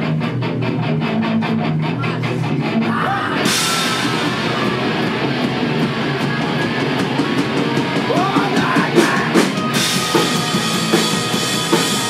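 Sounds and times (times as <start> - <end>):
live rock band playing: 0.0 - 12.0
cymbals ringing: 3.5 - 8.0.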